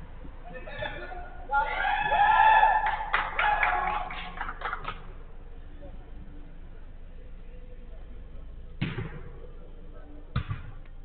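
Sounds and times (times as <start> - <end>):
football thuds: 10.3 - 10.8.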